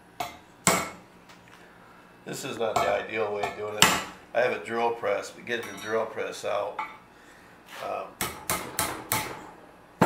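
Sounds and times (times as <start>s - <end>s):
hammer striking metal punch: 8.2s - 9.5s.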